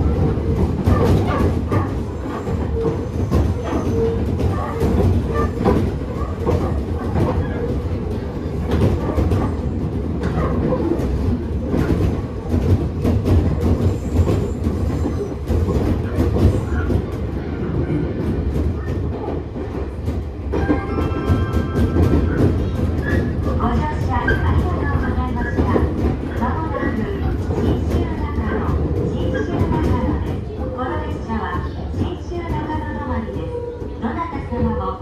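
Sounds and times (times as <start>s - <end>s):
train wheels rumbling: 0.0s - 35.0s.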